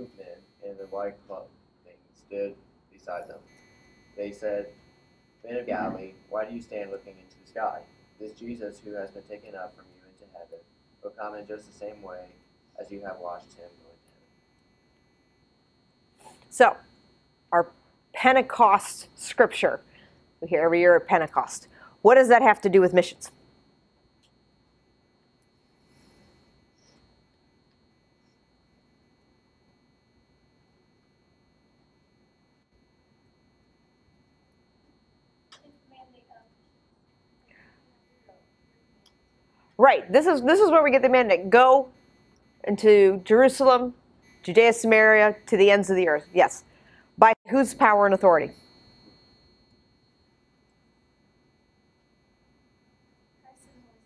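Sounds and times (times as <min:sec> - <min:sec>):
faint high-pitched tone: 0:00.0 - 0:04.8, 0:05.5 - 0:14.4, 0:37.5 - 0:50.8, 0:53.2 - 0:54.0.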